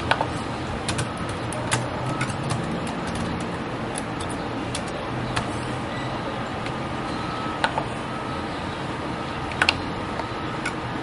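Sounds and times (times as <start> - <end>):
keyboard keys clicking: 0.9 - 5.5.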